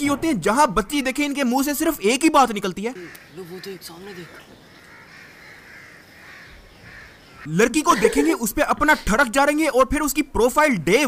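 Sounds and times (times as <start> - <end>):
hoarse bird calls: 1.8 - 7.5.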